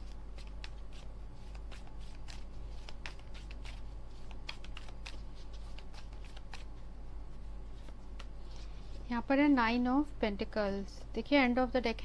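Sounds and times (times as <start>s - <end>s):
playing cards being shuffled: 0.0s - 6.8s, 7.7s - 9.0s
low steady hum: 0.0s - 12.0s.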